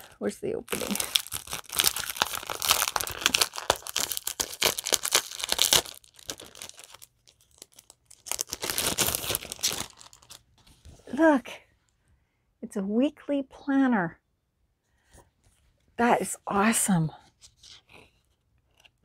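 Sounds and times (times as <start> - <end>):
gift wrapping tearing and crinkling: 0.0 - 10.4.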